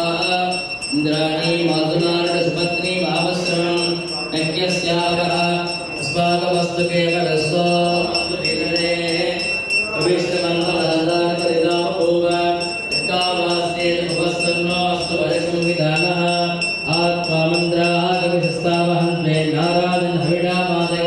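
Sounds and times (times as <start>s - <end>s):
high ringing tone: 0.0s - 21.0s
men chanting mantras: 0.0s - 21.0s.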